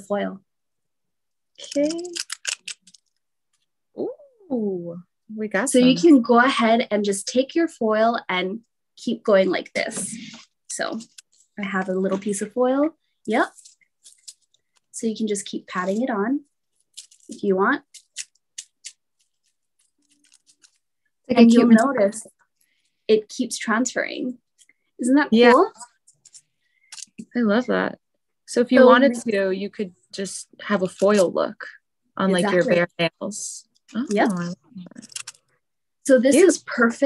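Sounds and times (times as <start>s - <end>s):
foil crinkling as peeled: 18.0s - 20.8s.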